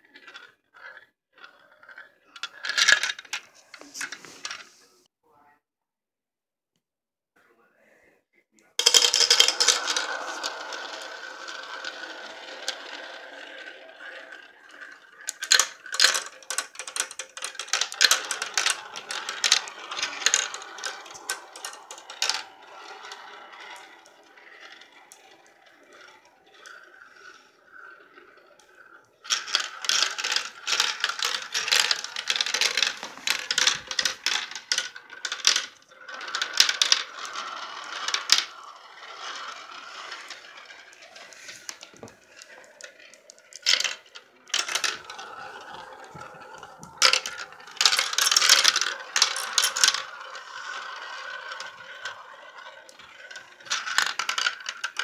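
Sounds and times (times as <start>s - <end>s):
marbles rolling in a toy marble run: 0.0s - 4.7s, 8.8s - 55.0s
marbles clattering clicks: 0.1s - 4.6s, 8.8s - 55.0s.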